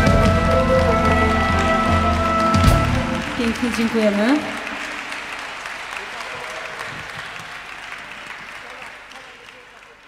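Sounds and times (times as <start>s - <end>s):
live band with brass section: 0.0s - 5.2s.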